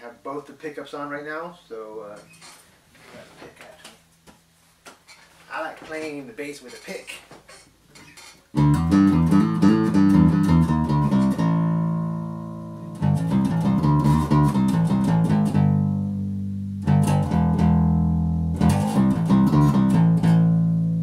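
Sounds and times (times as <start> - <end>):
electric bass picked notes: 8.5 - 21.0.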